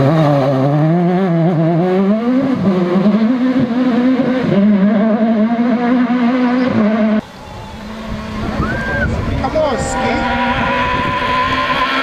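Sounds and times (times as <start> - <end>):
rally car engine revving: 0.0 - 12.0.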